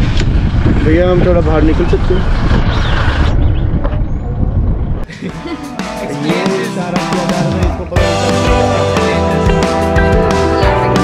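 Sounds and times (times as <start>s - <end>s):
minibus engine and road rumble: 0.0s - 5.1s.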